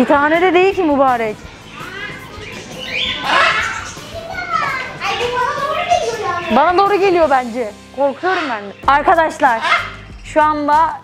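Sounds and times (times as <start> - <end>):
parrots screeching: 1.4 - 7.4, 8.0 - 10.3.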